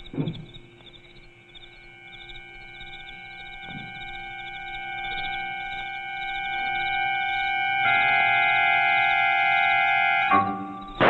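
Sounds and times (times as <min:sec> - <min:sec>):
sustained high chord music: 0:01.3 - 0:11.0.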